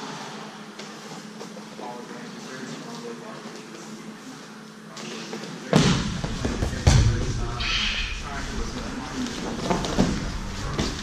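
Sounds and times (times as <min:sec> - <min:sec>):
low room hum: 0:00.0 - 0:11.0
indistinct voices: 0:04.9 - 0:11.0.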